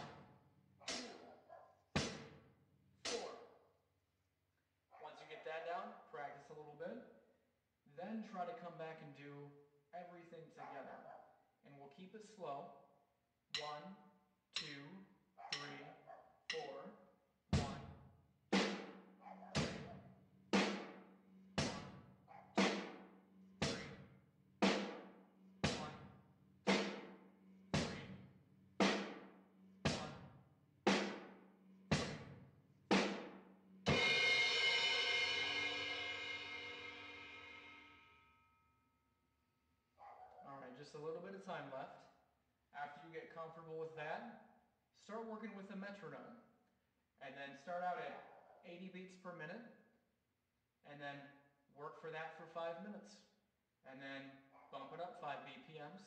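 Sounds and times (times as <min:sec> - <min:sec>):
drum kit rock beat: 0:00.0 - 0:00.3, 0:00.9 - 0:01.2, 0:02.0 - 0:02.4, 0:03.0 - 0:03.4, 0:13.6 - 0:13.8, 0:14.6 - 0:14.9, 0:15.5 - 0:15.9, 0:16.5 - 0:16.8, 0:17.6 - 0:18.0, 0:18.6 - 0:20.0, 0:20.6 - 0:27.2, 0:27.8 - 0:29.3, 0:29.9 - 0:37.8
cymbal crash ringing: 0:33.9 - 0:38.3.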